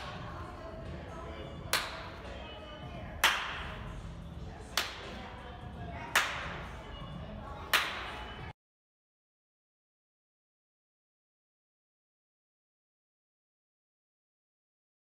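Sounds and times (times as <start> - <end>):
hand claps with echo: 1.6 - 2.2, 3.2 - 3.8, 4.7 - 5.2, 6.1 - 6.7, 7.6 - 8.3.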